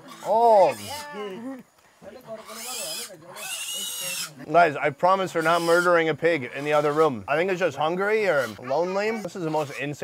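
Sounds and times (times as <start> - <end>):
pig squealing: 0.0 - 1.4, 2.3 - 4.4, 5.2 - 7.6, 8.2 - 10.0.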